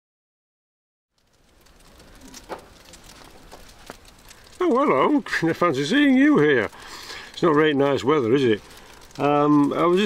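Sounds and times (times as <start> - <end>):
faint ticks and taps: 1.2 - 5.0
faint outdoor ambience: 1.2 - 10.0.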